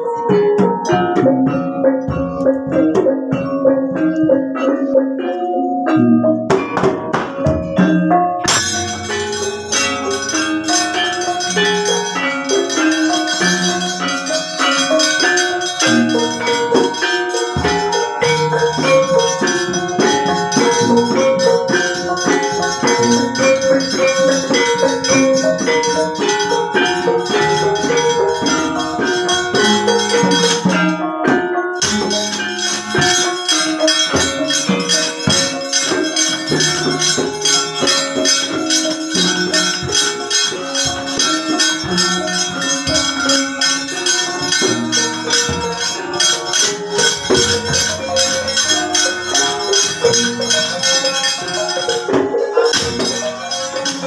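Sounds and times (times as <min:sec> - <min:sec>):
metallophones and drum: 0:00.0 - 0:54.0
metal plates rattling rapidly: 0:08.4 - 0:31.0, 0:31.8 - 0:54.0.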